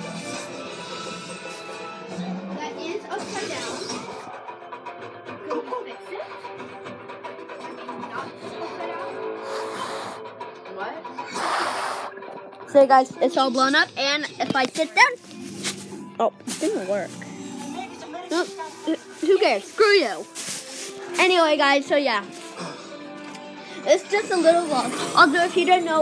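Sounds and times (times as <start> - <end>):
background music: 0.0 - 26.0
soft indistinct voices: 0.8 - 26.0.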